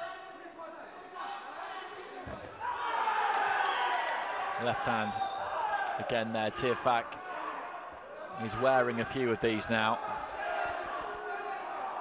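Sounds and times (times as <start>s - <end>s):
people shouting: 1.2s - 9.2s, 10.0s - 12.0s.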